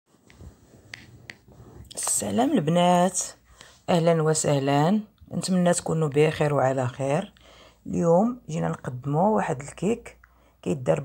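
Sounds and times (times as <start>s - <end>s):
low room noise: 0.1s - 11.0s.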